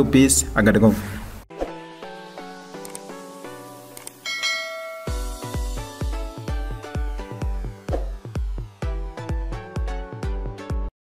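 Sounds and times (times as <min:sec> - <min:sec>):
notification bell chime: 0:04.2 - 0:05.7
electronic music with heavy bass: 0:04.4 - 0:10.8.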